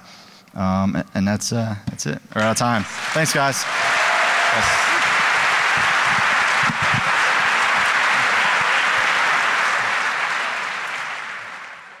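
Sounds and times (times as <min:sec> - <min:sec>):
audience applauding: 0:02.4 - 0:12.0.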